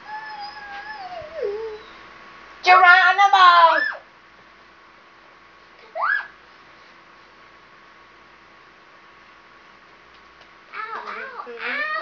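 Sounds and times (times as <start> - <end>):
child squealing: 5.8 - 6.4.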